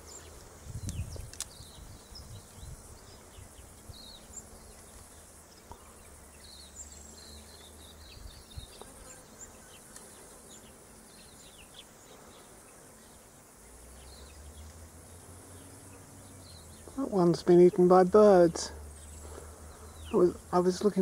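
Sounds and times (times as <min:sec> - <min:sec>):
light high hiss: 0:00.0 - 0:21.0.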